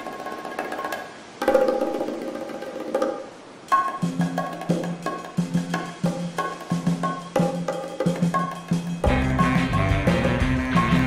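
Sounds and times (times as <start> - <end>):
bongos tapping: 0.0 - 11.0
surf rock band playing: 8.6 - 11.0.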